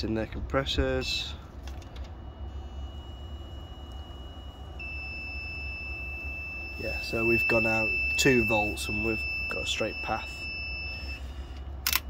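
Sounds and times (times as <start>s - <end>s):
low steady rumble: 0.0s - 12.0s
steady electronic beep: 2.1s - 11.4s.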